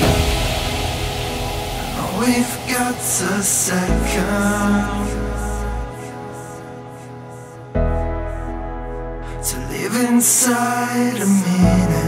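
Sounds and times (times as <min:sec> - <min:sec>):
high hiss: 0:00.0 - 0:07.7
sustained synth chords: 0:00.0 - 0:09.2.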